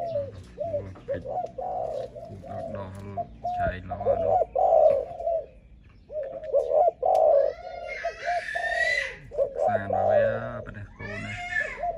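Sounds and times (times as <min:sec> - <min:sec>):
dove cooing: 0:00.0 - 0:11.9.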